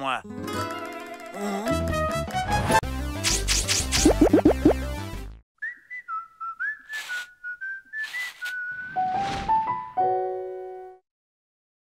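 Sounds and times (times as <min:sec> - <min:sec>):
brief swishes: 0:03.2 - 0:04.4, 0:06.9 - 0:07.3, 0:08.0 - 0:09.6
whistled melody: 0:05.6 - 0:09.2.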